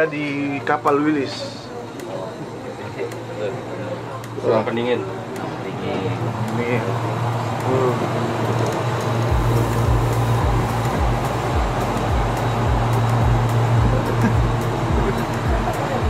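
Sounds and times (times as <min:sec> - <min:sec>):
background music with low beat: 0:00.0 - 0:16.0
refrigeration fans humming: 0:00.0 - 0:16.0.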